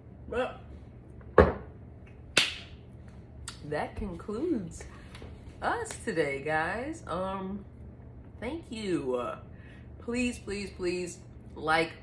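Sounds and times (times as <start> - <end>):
glass jar knocking on countertop: 1.4 - 1.7.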